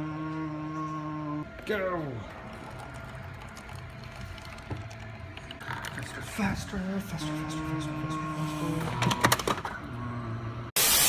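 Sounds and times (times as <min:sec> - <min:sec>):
coffee machine humming: 0:02.3 - 0:11.0.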